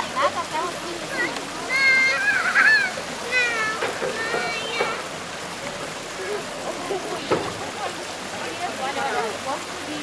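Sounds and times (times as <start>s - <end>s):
river water rushing: 0.0s - 10.0s
child crying out: 1.7s - 3.7s.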